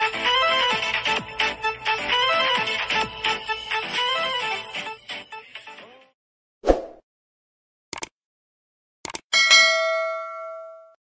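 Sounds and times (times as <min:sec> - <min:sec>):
notification bell ding: 0:09.4 - 0:11.0.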